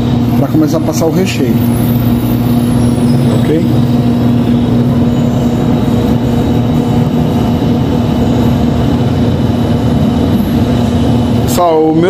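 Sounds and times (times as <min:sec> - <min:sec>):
machine motor humming: 0:00.0 - 0:12.0.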